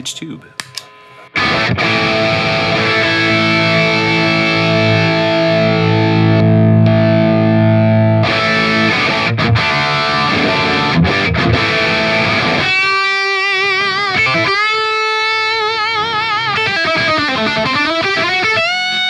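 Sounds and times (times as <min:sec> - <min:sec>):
overdriven electric guitar lead: 0:00.6 - 0:19.0.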